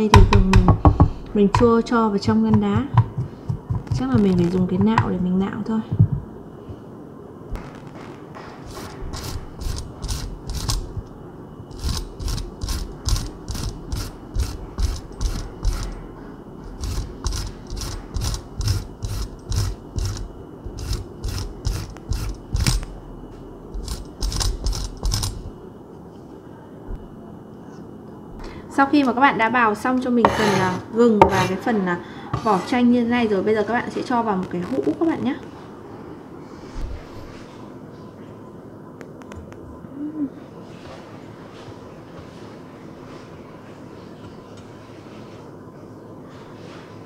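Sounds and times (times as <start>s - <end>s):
ginger rasping on a grater: 8.7s - 11.0s, 11.7s - 16.0s, 16.7s - 22.8s.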